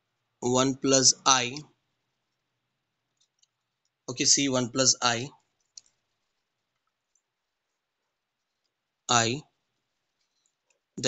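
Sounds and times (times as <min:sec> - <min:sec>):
man speaking: 0:00.4 - 0:01.7, 0:04.1 - 0:05.4, 0:09.1 - 0:09.4.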